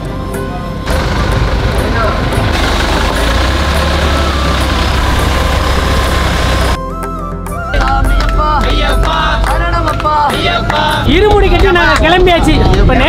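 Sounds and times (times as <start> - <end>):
street noise: 0.0 - 13.0
van engine running: 0.8 - 6.8.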